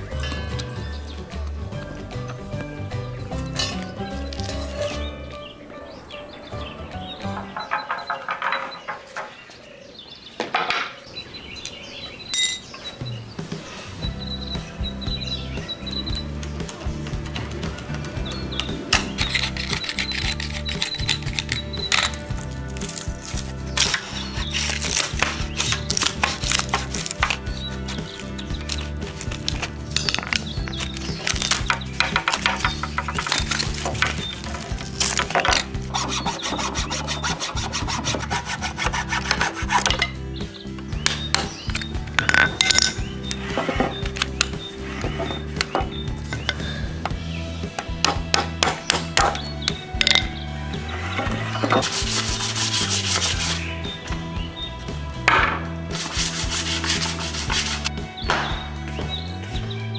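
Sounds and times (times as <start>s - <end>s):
soft music: 0.0s - 9.8s, 11.5s - 59.9s
knife shaving wood: 17.6s - 40.0s, 47.8s - 53.9s, 55.9s - 58.0s
metal blade scraping bark: 19.0s - 40.2s, 51.0s - 53.8s, 56.0s - 57.9s.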